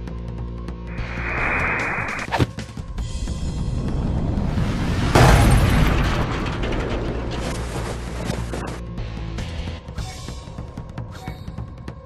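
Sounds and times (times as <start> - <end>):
rattling rumbling after crash: 3.4 - 9.0
crash: 3.5 - 8.8.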